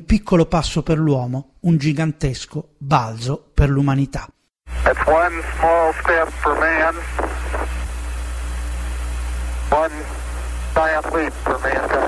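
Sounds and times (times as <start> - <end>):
radio hiss: 4.7 - 12.0
steady low hum: 4.7 - 12.0
man speaking over radio: 4.8 - 7.7, 9.7 - 12.0.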